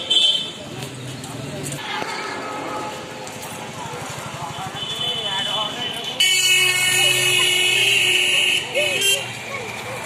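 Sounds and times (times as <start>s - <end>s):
loud vehicle horn: 4.8s - 9.3s.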